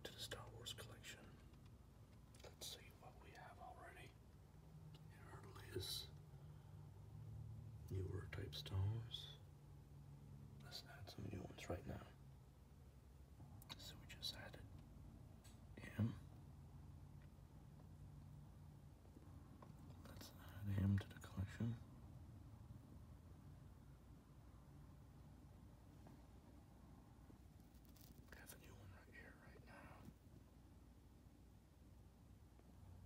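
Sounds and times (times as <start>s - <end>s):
faint whispered voice: 0.0s - 4.3s, 4.9s - 6.2s, 7.8s - 9.5s, 10.6s - 12.2s, 13.6s - 14.8s, 15.5s - 16.4s, 19.8s - 21.9s, 27.9s - 30.3s.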